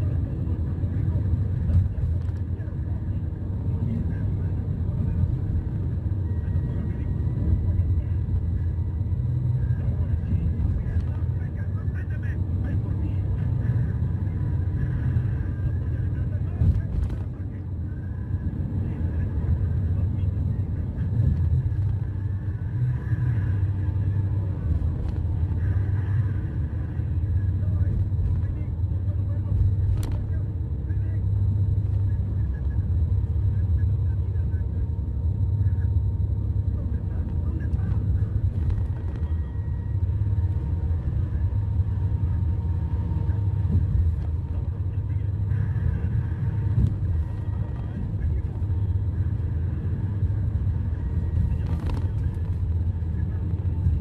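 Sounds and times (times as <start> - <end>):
road and engine rumble in a car: 0.0 - 54.0.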